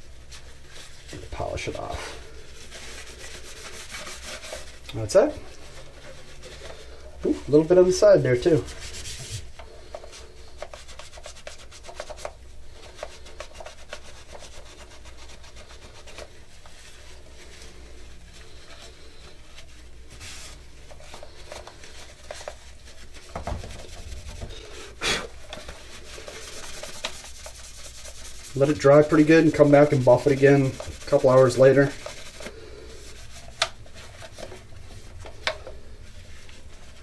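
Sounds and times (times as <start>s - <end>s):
cloth buffing hard surface: 0.0s - 37.0s.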